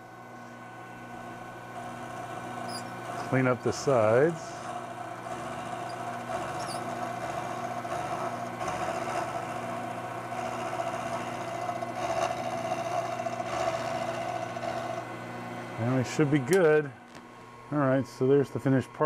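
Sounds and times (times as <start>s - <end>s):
milling machine cutting metal: 0.9s - 17.0s.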